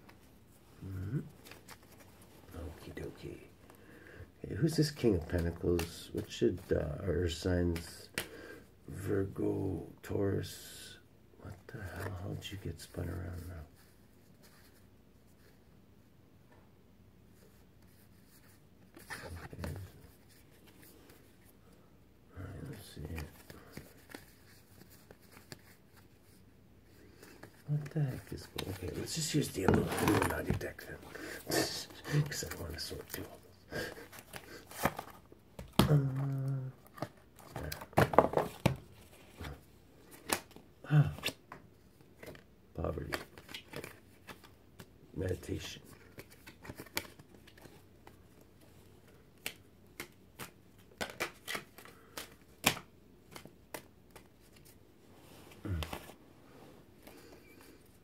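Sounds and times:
cards clicking: 49.4s - 54.3s.

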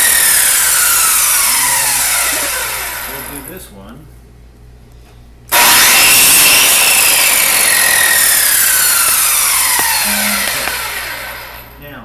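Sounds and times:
chop saw cutting: 0.0s - 3.3s, 5.5s - 11.8s
saw blade spinning down whine: 0.0s - 3.5s, 5.5s - 11.8s.

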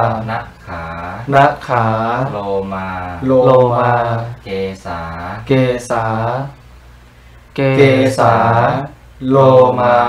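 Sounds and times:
man chanting: 0.0s - 6.6s, 7.6s - 10.0s.

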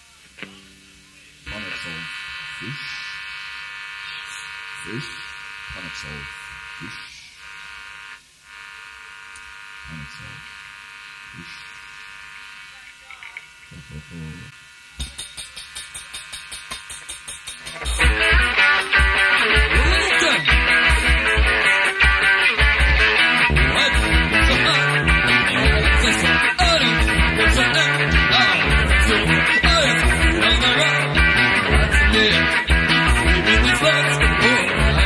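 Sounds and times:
electric buzz: 0.4s - 35.0s.

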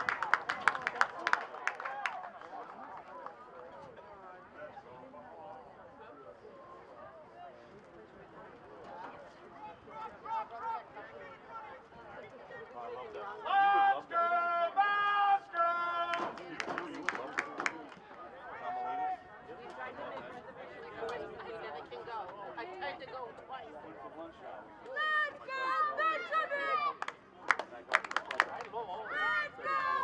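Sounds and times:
loud high-pitched shouts: 29.1s - 30.0s.

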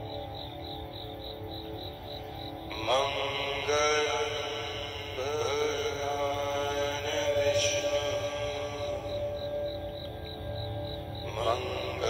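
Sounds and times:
steady drone: 0.0s - 12.0s
wordless chant-like vocal toning: 2.4s - 12.0s.

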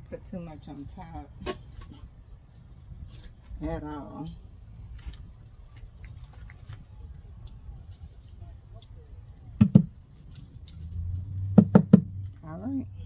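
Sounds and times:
knocks on wooden box: 9.6s - 9.9s, 11.6s - 12.1s.

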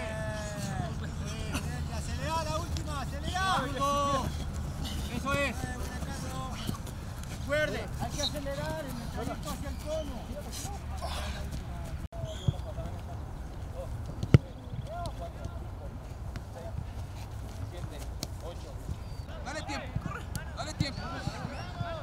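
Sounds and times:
football kicks: 14.1s - 15.6s.

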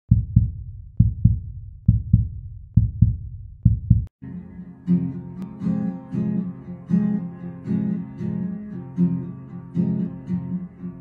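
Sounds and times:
heartbeat double thump: 0.1s - 4.1s.

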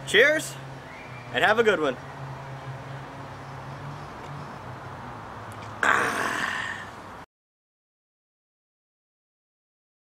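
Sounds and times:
man exhaling loudly: 5.8s - 7.0s.

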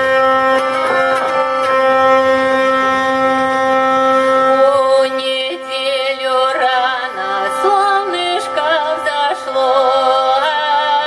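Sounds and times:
hurdy-gurdy drone: 0.0s - 11.0s.

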